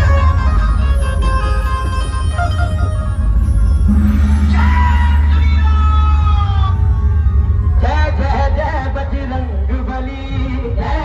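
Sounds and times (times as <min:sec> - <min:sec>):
electronic keyboard lead notes: 0:00.0 - 0:07.8
heavy steady bass: 0:00.0 - 0:11.0.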